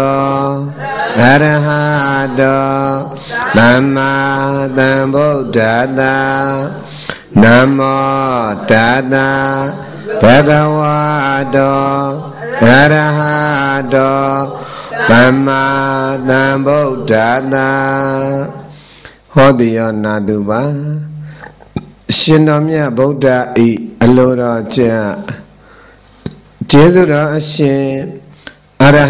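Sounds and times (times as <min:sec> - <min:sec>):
monk chanting into a microphone: 0:00.0 - 0:21.2, 0:26.6 - 0:29.0.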